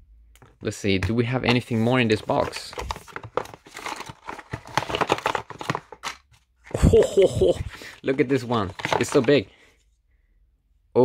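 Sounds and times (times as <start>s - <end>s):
packaging rustling and crackling: 1.5s - 6.3s, 7.7s - 9.5s.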